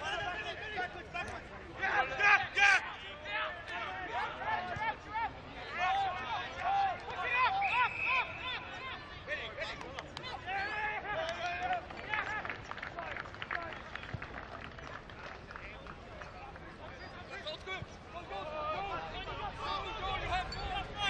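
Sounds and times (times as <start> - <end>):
men shouting and calling out: 0.0 - 12.4, 17.3 - 21.0.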